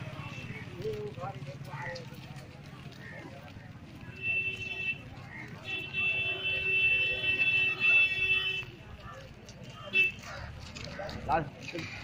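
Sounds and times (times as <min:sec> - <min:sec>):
crowd moving on foot: 0:00.0 - 0:12.0
vehicle horn blasts: 0:05.7 - 0:08.7.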